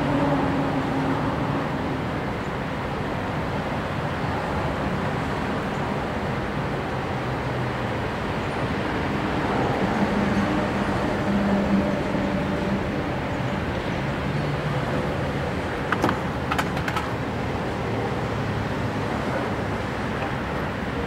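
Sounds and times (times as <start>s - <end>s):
road traffic noise: 0.0s - 21.0s.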